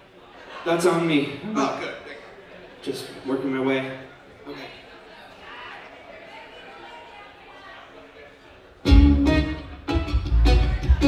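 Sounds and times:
loud guitar chord: 0:08.9 - 0:11.0.

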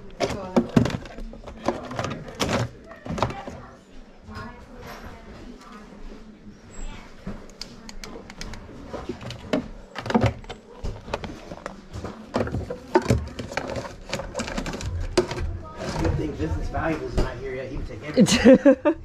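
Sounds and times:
plastic remote controls clattering: 0:00.0 - 0:03.6, 0:07.6 - 0:16.1.

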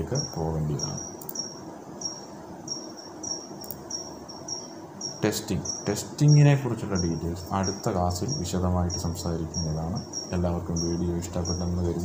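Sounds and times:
high-pitched insect chirping: 0:00.0 - 0:12.0.

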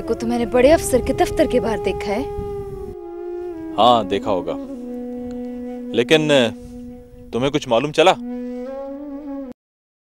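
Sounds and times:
held reedy note: 0:00.0 - 0:09.6.

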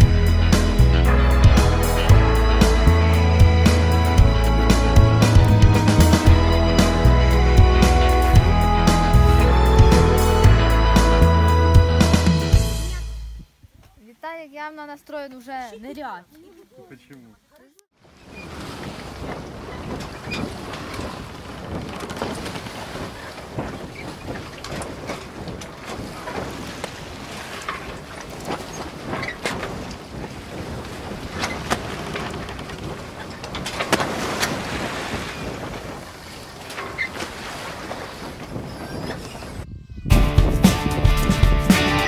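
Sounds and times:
wind buffeting microphone: 0:18.1 - 0:42.0.

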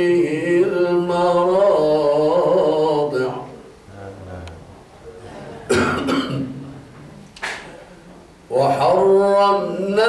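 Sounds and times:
man clearing his throat: 0:05.2 - 0:06.6.

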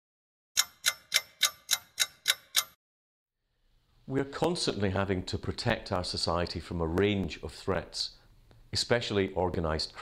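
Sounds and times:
clock ticking: 0:00.6 - 0:02.8.

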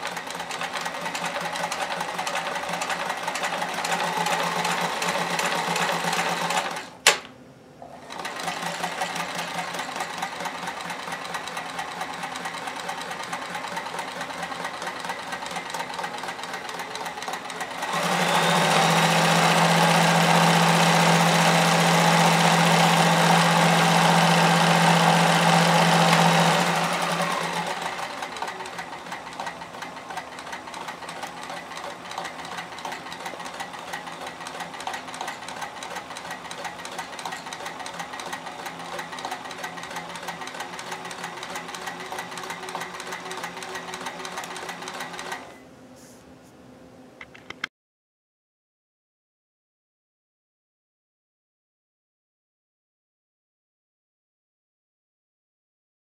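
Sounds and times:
sewing machine stitching: 0:00.0 - 0:45.6.

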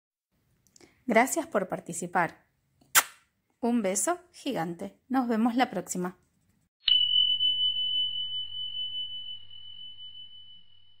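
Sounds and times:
high chime ringing: 0:06.8 - 0:11.0.

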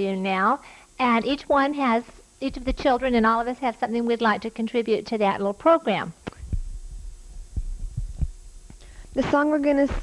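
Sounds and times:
steady low hum: 0:00.0 - 0:10.0
dull low thumps: 0:06.4 - 0:08.7.

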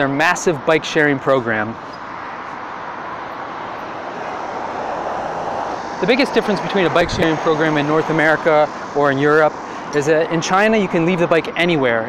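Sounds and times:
passing cars: 0:00.0 - 0:12.0.

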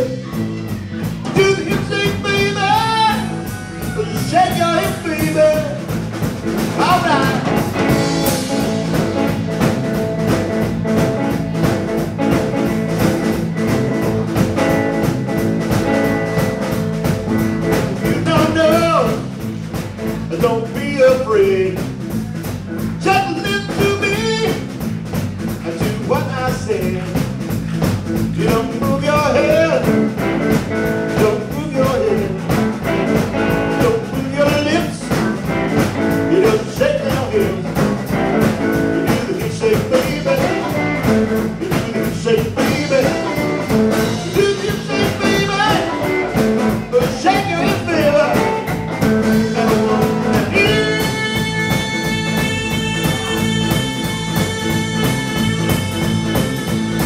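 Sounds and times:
drum kit: 0:00.0 - 0:57.0
electric bass: 0:00.0 - 0:57.0
electric guitar: 0:00.0 - 0:57.0.

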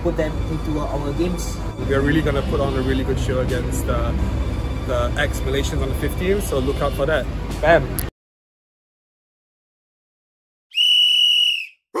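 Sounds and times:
high-pitched whistle blast: 0:10.7 - 0:12.0.

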